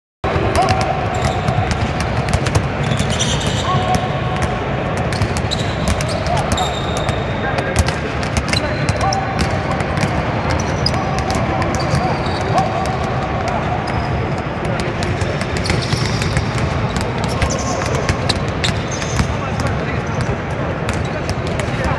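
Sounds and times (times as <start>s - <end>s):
basketballs bouncing on hardwood: 0.5s - 21.9s
sneakers squeaking on floor: 0.6s - 4.1s, 5.0s - 14.5s, 15.2s - 21.9s.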